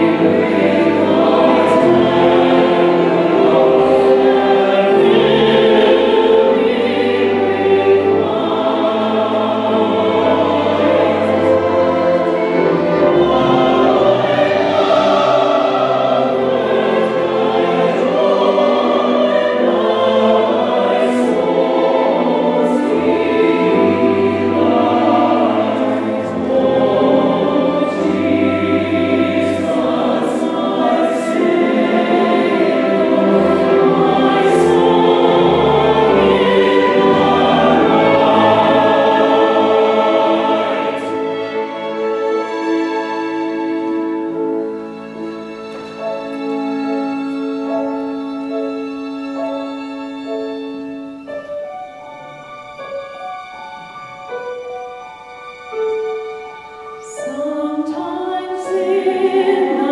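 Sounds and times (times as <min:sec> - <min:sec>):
choir singing: 0:00.0 - 0:59.9
strings: 0:00.0 - 0:59.9
female soloist singing: 0:57.1 - 0:59.9.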